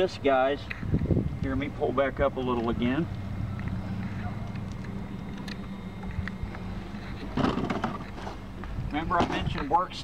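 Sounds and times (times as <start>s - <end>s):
wind rumble on microphone: 0.6s - 4.1s
light clicks and knocks of gear: 2.5s - 7.4s, 8.0s - 9.9s.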